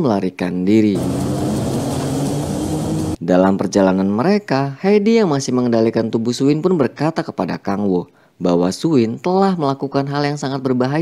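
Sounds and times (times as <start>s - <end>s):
car engine driving off: 0.9s - 3.2s
road noise hiss: 1.0s - 3.2s.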